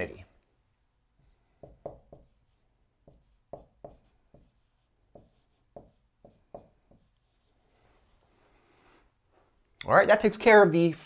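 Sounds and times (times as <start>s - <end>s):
marker writing on whiteboard: 1.2s - 7.6s.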